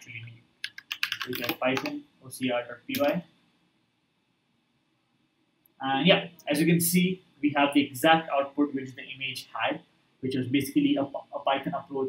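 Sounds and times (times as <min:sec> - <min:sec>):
man speaking: 0:00.0 - 0:00.3, 0:01.2 - 0:03.2, 0:05.8 - 0:12.0.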